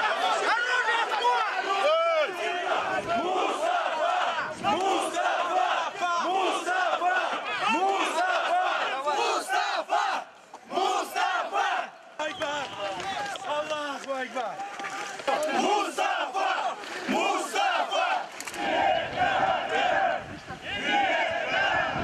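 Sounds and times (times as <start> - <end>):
crowd shouting: 0.0 - 22.0.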